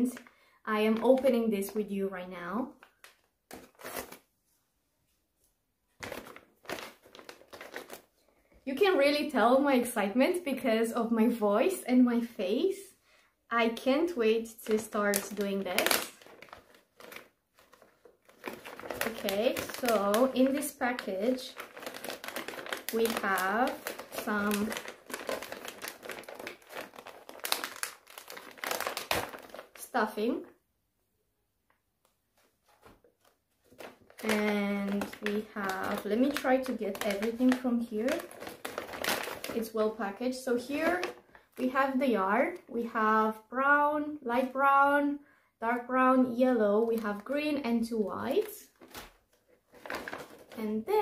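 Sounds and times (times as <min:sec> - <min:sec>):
plastic pouch crinkling: 0:02.8 - 0:04.3, 0:06.0 - 0:08.5, 0:14.4 - 0:30.3, 0:32.4 - 0:41.7, 0:48.3 - 0:50.8.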